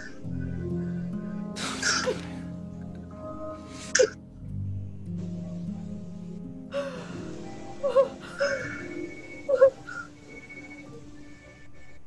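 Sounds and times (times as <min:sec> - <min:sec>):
soft music score: 0:00.0 - 0:12.0
woman sobbing: 0:06.7 - 0:09.8.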